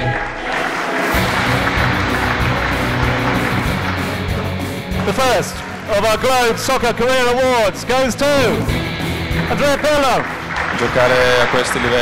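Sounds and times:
audience applauding: 0.0s - 12.0s
background music with low notes: 1.1s - 12.0s.

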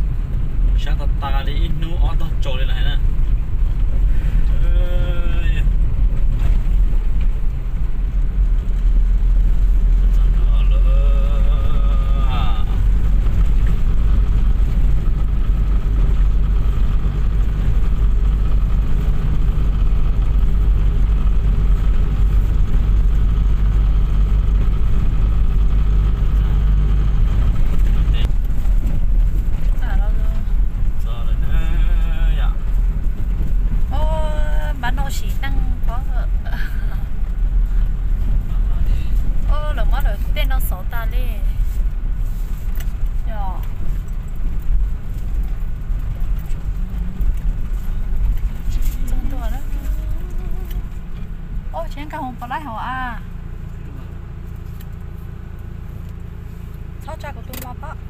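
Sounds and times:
car engine and tyres rumbling: 0.0s - 58.0s
voices: 10.1s - 12.9s, 33.9s - 37.1s, 48.7s - 51.1s, 57.0s - 58.0s.

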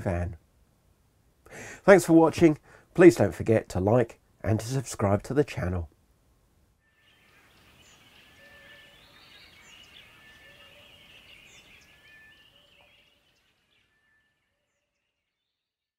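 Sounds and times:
birds chirping and whistling: 6.9s - 14.8s.

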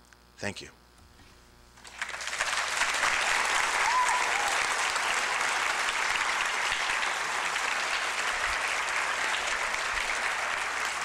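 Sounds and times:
audience clapping: 1.8s - 11.0s.

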